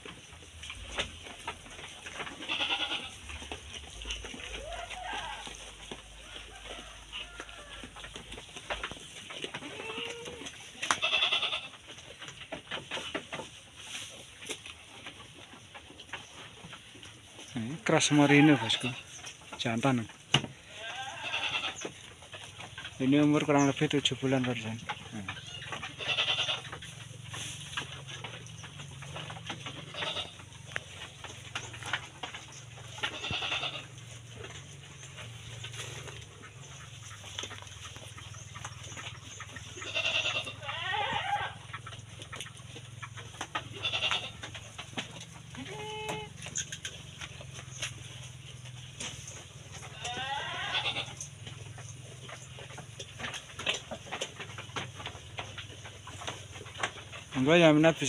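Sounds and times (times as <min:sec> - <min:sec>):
sheep bleating: 0:02.3 - 0:03.2, 0:09.6 - 0:11.8, 0:20.6 - 0:21.8, 0:25.4 - 0:26.8, 0:29.9 - 0:30.5, 0:33.0 - 0:34.0, 0:39.8 - 0:41.6, 0:43.7 - 0:44.5, 0:45.5 - 0:46.4, 0:49.9 - 0:51.3.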